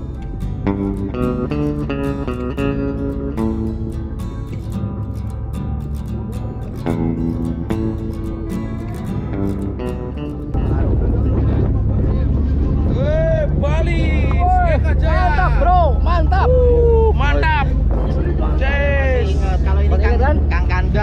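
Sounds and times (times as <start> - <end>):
ferry engine rumble: 0.0 - 21.0
guitar music: 0.0 - 21.0.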